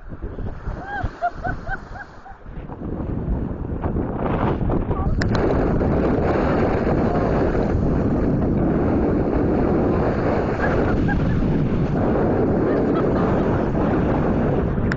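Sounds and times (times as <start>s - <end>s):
small waves washing on sand: 0.0s - 2.6s, 4.4s - 14.4s
wind buffeting microphone: 0.0s - 14.9s.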